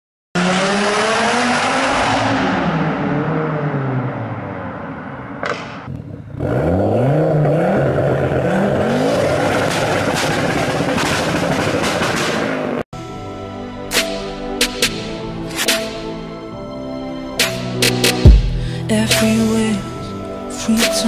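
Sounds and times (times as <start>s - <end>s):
car engine revving: 0.4s - 12.8s.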